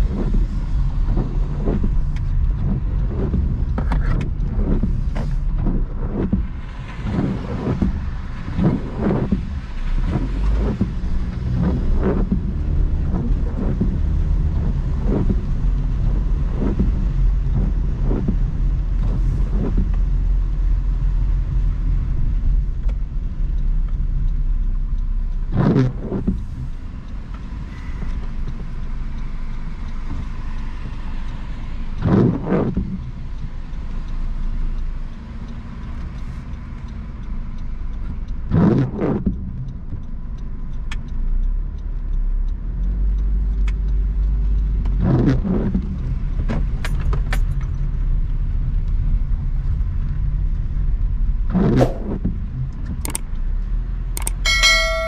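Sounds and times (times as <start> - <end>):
low rumble of car: 0.0 - 55.0
windshield wipers sweeping: 0.0 - 55.0
clicks: 51.5 - 53.3, 54.2 - 55.0
chiming ding: 54.4 - 55.0.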